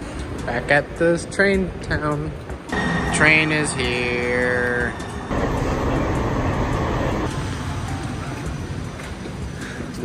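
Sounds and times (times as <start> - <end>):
train rumbling: 2.6 - 8.8.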